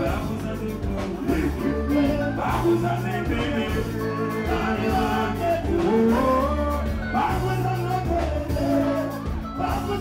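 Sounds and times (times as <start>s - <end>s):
bass guitar: 0.0s - 10.0s
drums: 0.0s - 10.0s
person singing: 0.0s - 10.0s.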